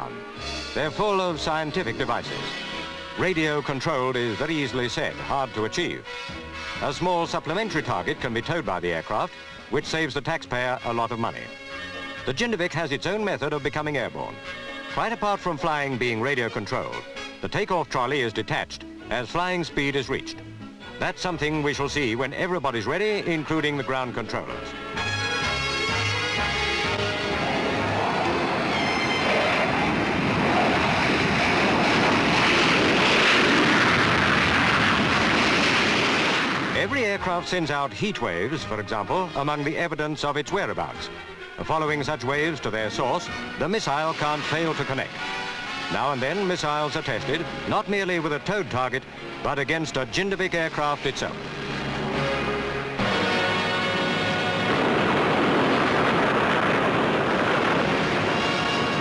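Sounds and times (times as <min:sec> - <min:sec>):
music: 0:00.0 - 0:59.0
turbojet engine roar: 0:25.2 - 0:37.2, 0:50.4 - 0:59.0
rushing rumble: 0:26.2 - 0:37.8, 0:50.7 - 0:59.0.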